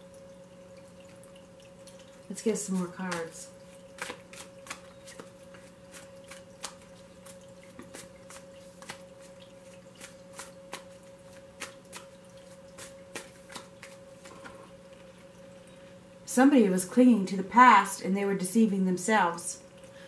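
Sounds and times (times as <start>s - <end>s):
faint steady hum: 0.0s - 20.0s
cards being shuffled: 2.7s - 3.4s, 4.0s - 9.3s, 10.0s - 14.6s.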